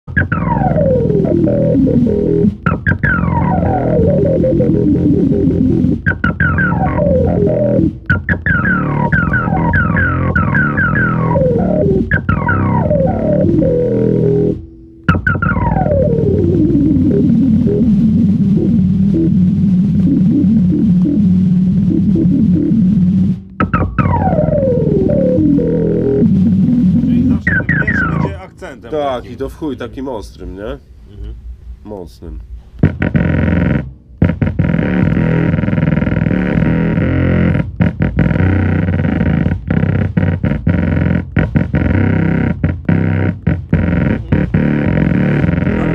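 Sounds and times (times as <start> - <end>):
synthesizer pitch sweeps: 0.1 - 29.7, 41.6 - 45.9
low synthesizer drone: 0.1 - 45.9.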